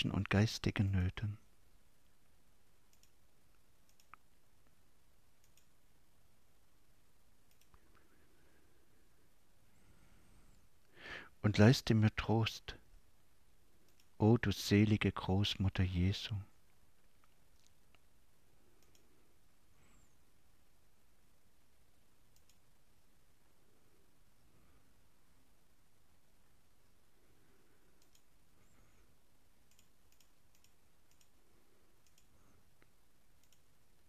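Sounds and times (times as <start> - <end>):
soft clicks: 2.0 - 4.8, 5.4 - 5.8, 7.4 - 8.1, 13.8 - 14.2, 16.6 - 18.1, 18.7 - 19.2, 22.3 - 22.8, 27.8 - 28.8, 29.6 - 34.0.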